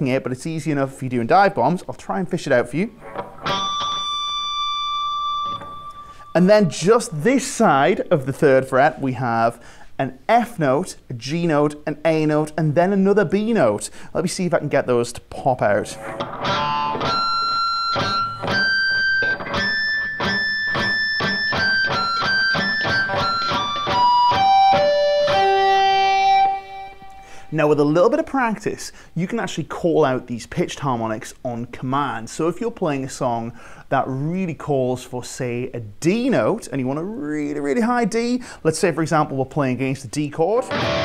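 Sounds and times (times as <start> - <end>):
electric guitar harmonic ringing: 3.0 - 7.1, 15.8 - 27.5, 40.6 - 41.0.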